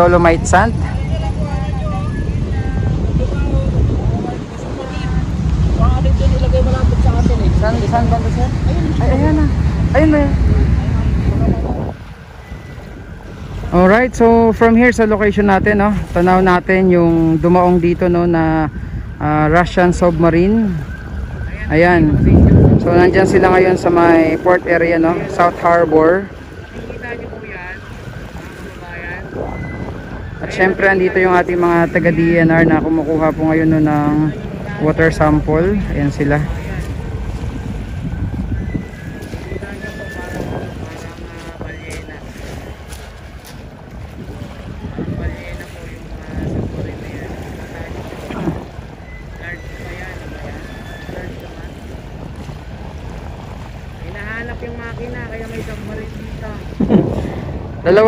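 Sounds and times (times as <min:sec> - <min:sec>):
wind buffeting microphone: 0:00.0 - 0:58.0
faint voices: 0:20.6 - 0:58.0.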